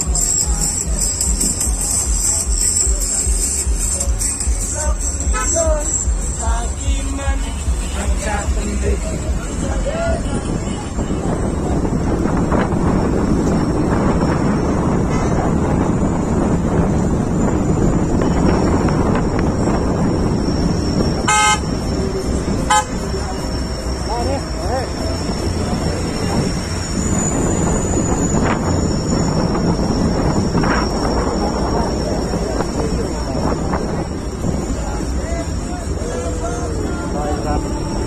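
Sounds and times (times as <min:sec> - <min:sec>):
vehicle engine and road noise: 0:00.0 - 0:38.0
short horn toots: 0:05.2 - 0:05.7, 0:21.2 - 0:21.7, 0:22.6 - 0:23.0.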